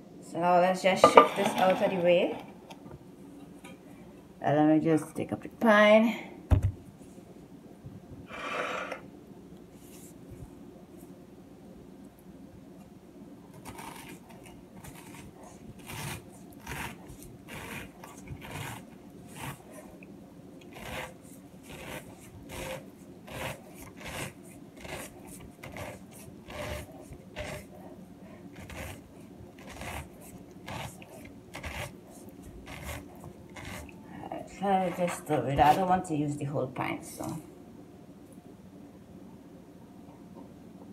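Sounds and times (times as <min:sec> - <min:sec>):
corer rasping through pineapple: 0:13.5 - 0:20.0, 0:20.6 - 0:36.0.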